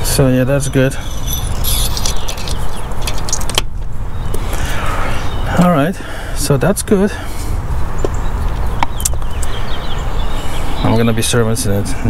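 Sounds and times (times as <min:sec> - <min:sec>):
wind rumbling on microphone: 0:00.0 - 0:05.6
light clicks and rattles of parts: 0:01.2 - 0:03.7.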